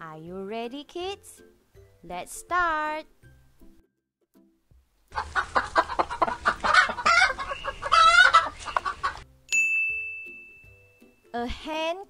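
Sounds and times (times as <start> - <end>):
hen clucking: 5.1 - 9.2.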